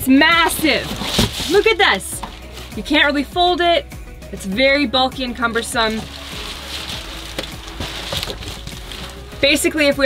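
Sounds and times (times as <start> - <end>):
stiff cover rustling and scraping: 0.3 - 3.0, 5.5 - 9.6.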